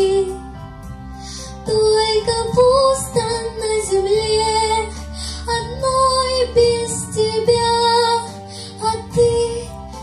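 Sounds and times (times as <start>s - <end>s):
girl singing into microphone: 0.0s - 0.5s, 1.6s - 10.0s
musical accompaniment: 0.0s - 10.0s.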